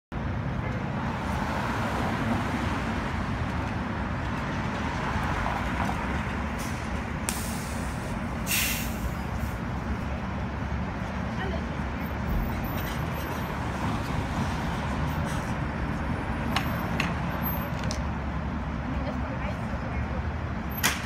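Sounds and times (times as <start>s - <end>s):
bus diesel engine rumbling: 2.0s - 21.0s
air brake hisses: 6.6s - 9.2s.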